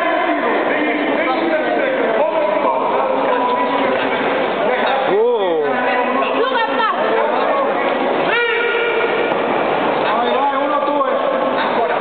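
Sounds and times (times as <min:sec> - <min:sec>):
single loud shouts: 0:08.2 - 0:09.3
arena crowd shouting: 0:08.2 - 0:09.4.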